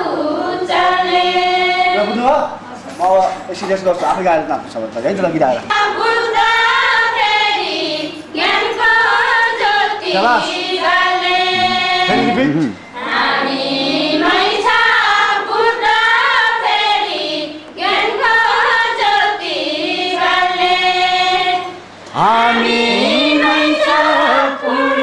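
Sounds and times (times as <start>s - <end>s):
women singing in unison: 0.0s - 2.2s, 5.7s - 25.0s.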